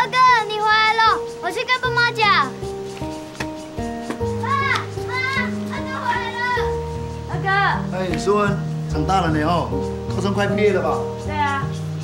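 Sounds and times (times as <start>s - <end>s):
girl calling out: 0.0s - 2.6s, 4.4s - 7.8s
background music with held notes: 0.0s - 12.0s.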